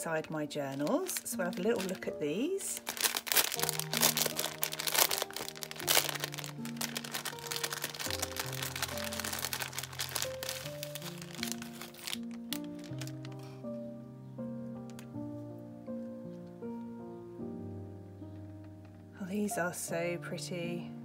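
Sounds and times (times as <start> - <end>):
slow background music: 0.0 - 21.0
plastic bag crinkling: 0.2 - 13.7.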